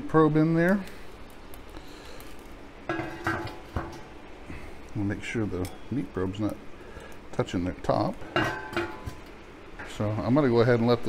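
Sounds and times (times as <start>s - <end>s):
steel lid clanking: 2.9s - 4.1s, 8.2s - 10.1s.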